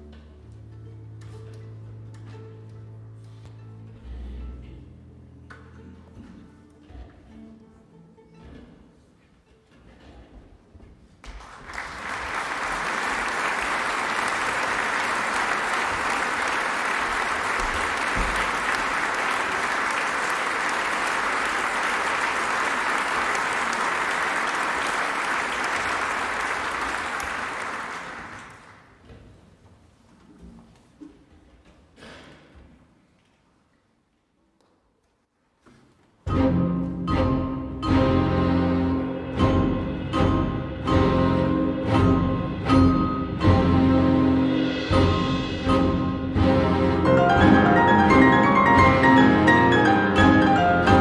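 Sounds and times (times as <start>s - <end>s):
audience applauding: 11.2s - 29.0s.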